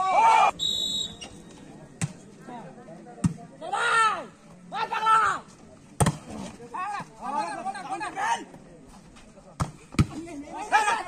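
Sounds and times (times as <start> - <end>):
loud shouts: 0.0 - 0.6, 10.6 - 11.0.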